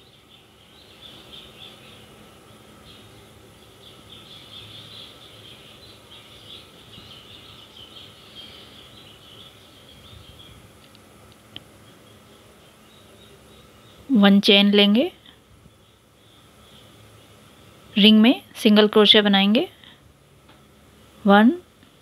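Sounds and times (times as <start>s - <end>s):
faint high-pitched chirping: 0.0s - 10.7s
faint steady hum: 0.0s - 22.0s.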